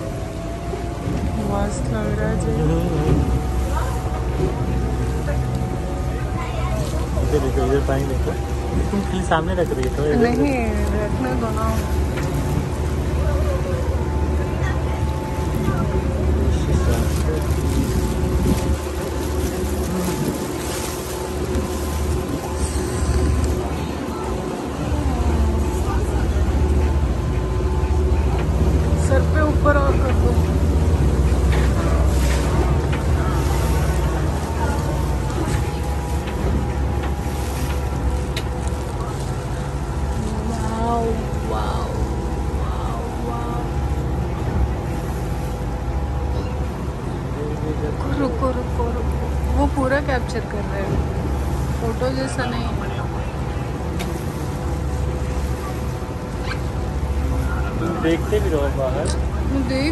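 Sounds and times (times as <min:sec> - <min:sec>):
boat motor humming: 0:00.0 - 0:59.9
rough river water rushing: 0:00.0 - 0:59.9
wind buffeting microphone: 0:00.0 - 0:59.9.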